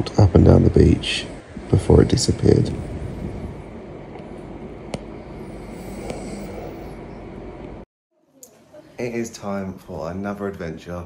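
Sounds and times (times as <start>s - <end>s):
wind: 0.0s - 6.1s.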